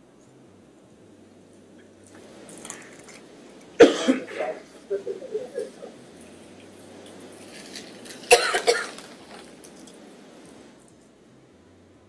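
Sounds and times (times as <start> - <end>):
loud cough: 3.8 - 5.9, 8.3 - 9.0.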